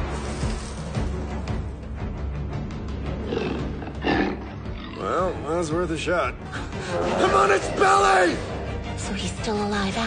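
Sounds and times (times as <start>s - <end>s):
tense background music: 0.0s - 10.0s
bear growling: 3.1s - 5.4s.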